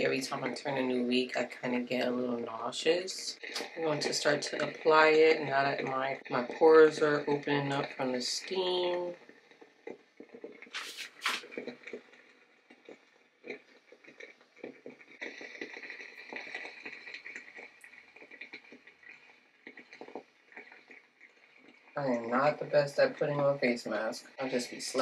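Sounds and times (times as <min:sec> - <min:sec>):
brush strokes on skin: 0:10.8 - 0:11.6.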